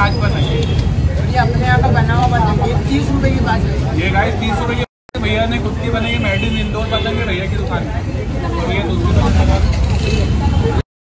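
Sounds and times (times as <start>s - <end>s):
people talking: 0.0s - 10.8s.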